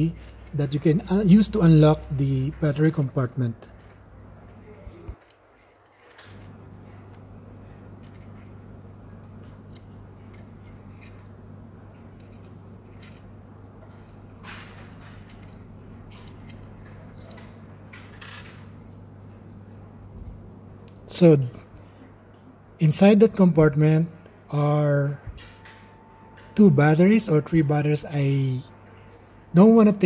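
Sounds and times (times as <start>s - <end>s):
steady low hum: 0.0s - 30.0s
small metal clicks and scrapes: 2.7s - 6.6s, 9.2s - 11.3s.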